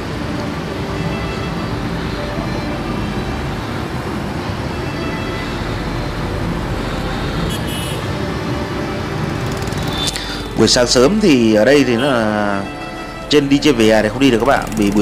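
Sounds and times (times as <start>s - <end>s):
city road traffic: 0.0s - 15.0s
motorbikes passing: 0.0s - 15.0s.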